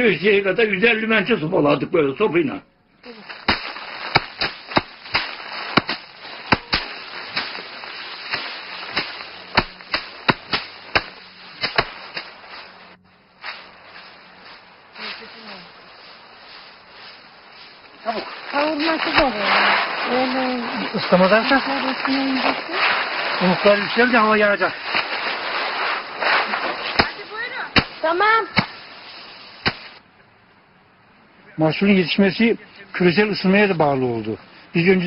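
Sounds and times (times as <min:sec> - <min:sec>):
outdoor noise: 0:00.0 - 0:35.0
rice threshing cracks and whacks: 0:03.1 - 0:30.0.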